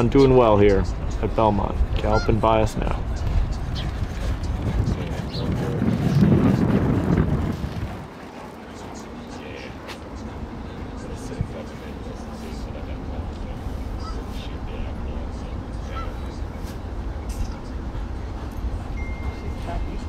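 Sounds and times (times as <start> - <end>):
faint distant voices: 0.0 - 20.0
steady low rumble: 0.0 - 20.0.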